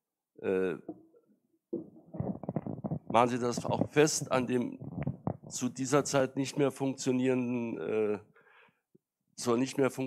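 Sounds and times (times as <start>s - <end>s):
microphone handling noise: 1.8s - 5.8s.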